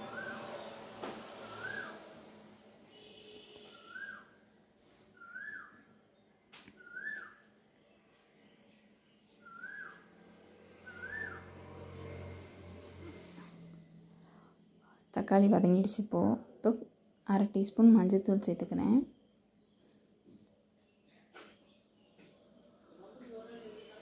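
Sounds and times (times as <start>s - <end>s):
bird whistled chirp: 0.0s - 0.6s, 1.4s - 2.0s, 3.7s - 4.3s, 5.2s - 5.8s, 6.8s - 7.4s, 9.4s - 10.0s, 10.8s - 11.4s.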